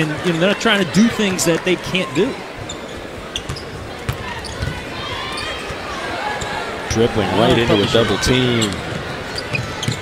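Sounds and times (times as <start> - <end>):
arena crowd voices: 0.0 - 10.0.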